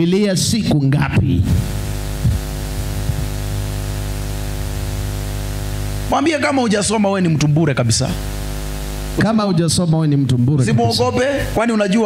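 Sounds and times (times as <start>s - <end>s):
man speaking over microphone: 0.0s - 1.7s, 6.1s - 8.3s, 9.2s - 12.0s
mains hum with hiss: 0.0s - 12.0s.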